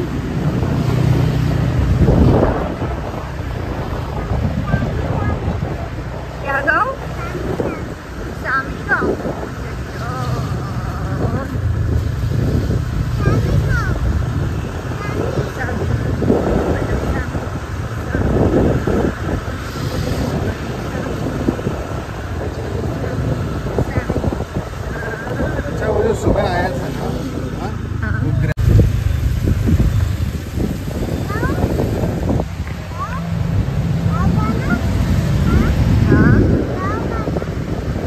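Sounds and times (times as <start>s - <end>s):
voices: 0.0s - 28.6s, 29.6s - 38.0s
motor scooter running: 0.0s - 38.0s
wind buffeting microphone: 0.0s - 38.0s.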